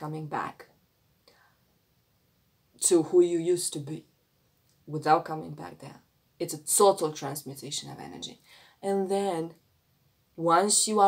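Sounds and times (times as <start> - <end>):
woman speaking: 0.0 - 0.7, 2.8 - 4.0, 4.8 - 9.6, 10.4 - 11.0.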